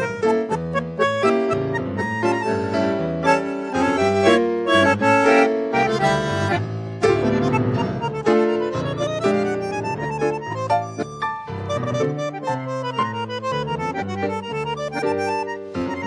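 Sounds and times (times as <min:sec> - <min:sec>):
bandoneon: 0:00.0 - 0:16.0
digital piano: 0:00.0 - 0:16.0.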